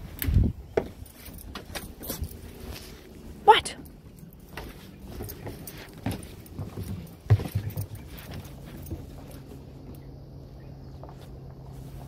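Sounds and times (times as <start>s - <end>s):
footsteps on wooden deck: 0.0s - 12.0s.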